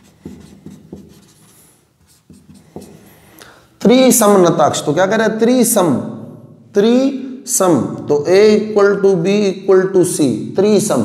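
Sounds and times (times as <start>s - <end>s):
scratchy writing strokes: 0.0s - 3.4s.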